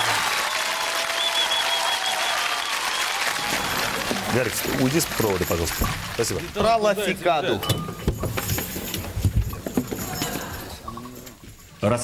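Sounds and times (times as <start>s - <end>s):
instruments being handled: 7.6s - 11.8s.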